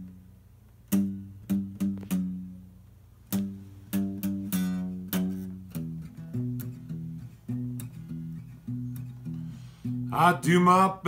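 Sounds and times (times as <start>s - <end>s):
acoustic guitar chords strummed: 0.0s - 11.0s.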